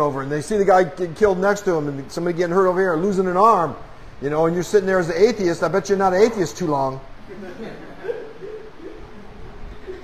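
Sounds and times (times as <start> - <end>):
speech: 0.0 - 7.1
soft low laughter: 7.2 - 10.0.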